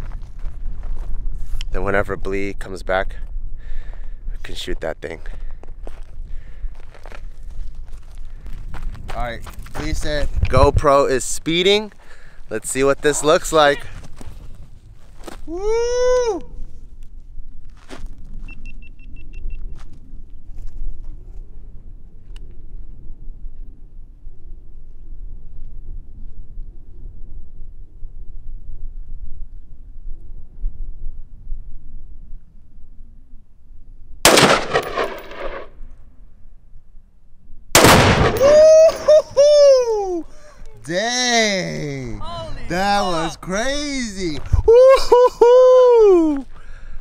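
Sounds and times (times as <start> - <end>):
rifle shots and target blasts: 34.3 - 35.8, 37.8 - 39.1.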